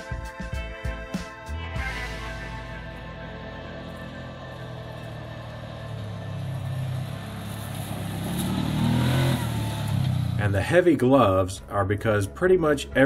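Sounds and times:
background music: 0.0 - 13.0
vehicle engine running: 1.7 - 10.9.

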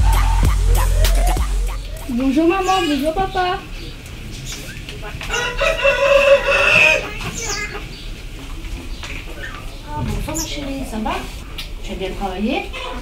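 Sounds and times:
rooster crowing: 5.3 - 7.2.

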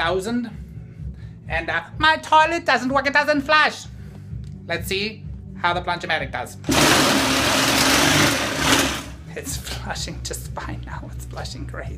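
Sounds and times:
cordless drill motor running: 6.7 - 9.2
water churning in toilet bowl: 6.7 - 9.2.

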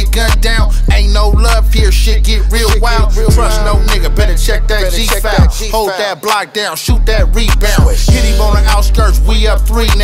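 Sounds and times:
deep bass kicks: 0.0 - 5.8, 6.9 - 10.0
steady low bass: 0.0 - 5.8, 6.9 - 10.0
rapping over a beat: 0.0 - 10.0.

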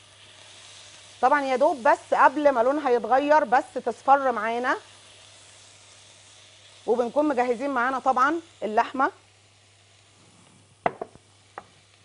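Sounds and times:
onion sizzling in a pan: 0.0 - 12.0.

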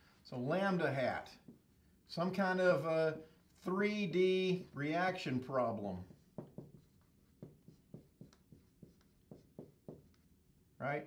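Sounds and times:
marker squeaking on whiteboard: 6.1 - 10.4.

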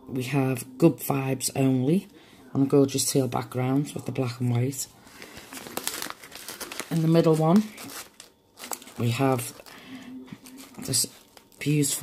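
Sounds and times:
plastic sleeve page crinkling: 5.0 - 12.0.

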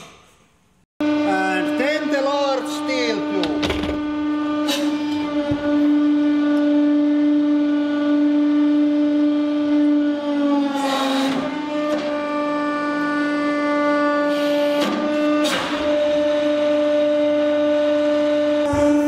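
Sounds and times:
hydraulic pump drone: 0.0 - 19.0.

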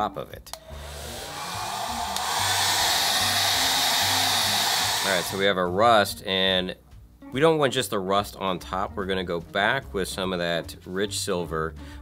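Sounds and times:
hair dryer blowing: 0.6 - 5.5.

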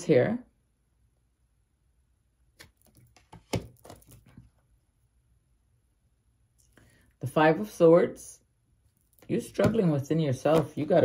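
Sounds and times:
cards clicking and tapping: 2.6 - 4.5, 9.4 - 11.0.

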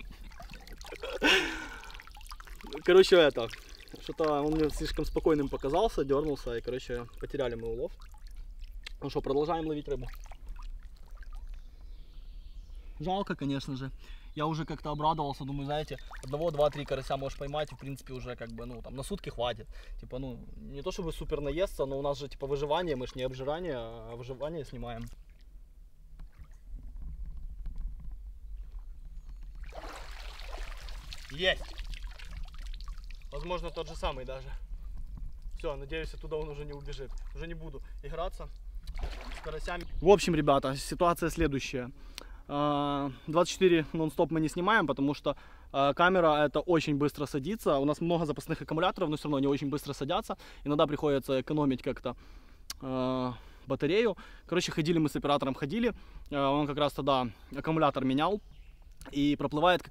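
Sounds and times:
water trickling and dripping: 0.0 - 12.2, 15.1 - 19.4, 28.6 - 40.6
pond water lapping and trickling: 0.0 - 59.9.

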